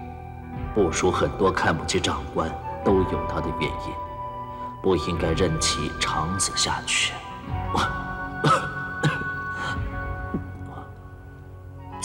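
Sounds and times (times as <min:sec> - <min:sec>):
soft background music: 0:00.0 - 0:12.0
old man coughing: 0:07.7 - 0:10.5.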